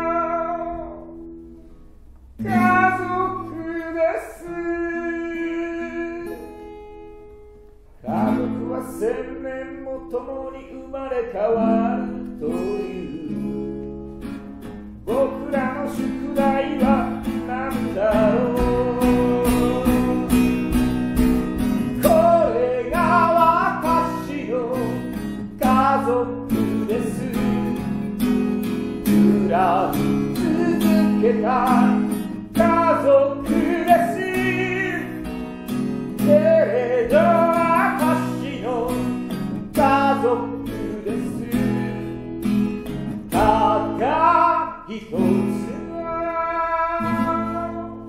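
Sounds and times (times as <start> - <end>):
man singing: 0.0 - 1.2, 2.4 - 6.8, 8.0 - 13.9, 15.0 - 48.0
guitar strumming: 0.0 - 48.0.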